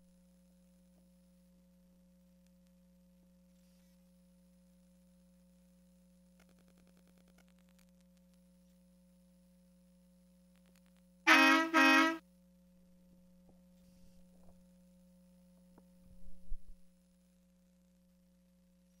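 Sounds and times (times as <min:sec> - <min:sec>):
toy truck horn beeps: 0:11.3 - 0:12.2.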